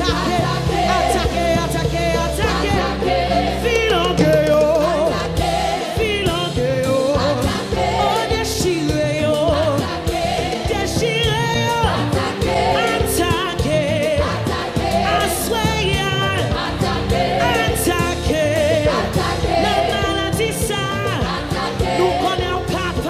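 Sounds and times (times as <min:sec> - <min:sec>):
choir singing with band: 0:00.0 - 0:23.0.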